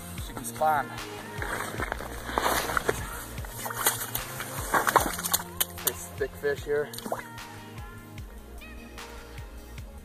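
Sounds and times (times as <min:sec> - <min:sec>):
electronic background music: 0:00.0 - 0:10.0.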